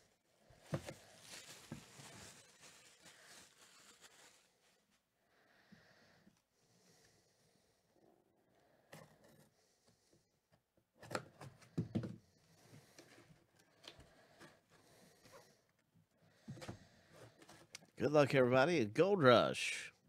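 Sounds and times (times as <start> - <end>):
paper and cardboard rustling: 0.6 - 4.9.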